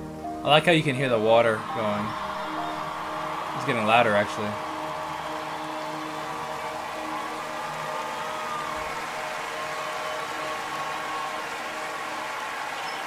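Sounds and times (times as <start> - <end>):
running water rushing: 1.0 - 13.0
concert crowd noise: 1.2 - 13.0.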